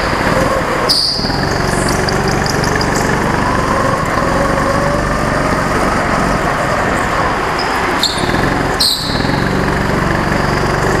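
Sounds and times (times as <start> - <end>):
go-kart engine running: 0.0 - 11.0
short high squeal: 0.8 - 1.7, 7.6 - 9.6.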